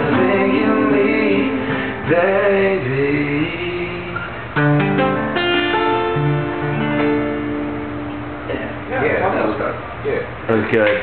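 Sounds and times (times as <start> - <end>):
acoustic guitar chords ringing: 0.0 - 9.6.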